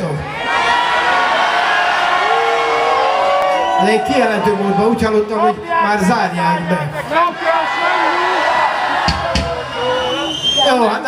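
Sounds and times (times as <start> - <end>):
audience cheering and shouting: 0.0 - 11.0.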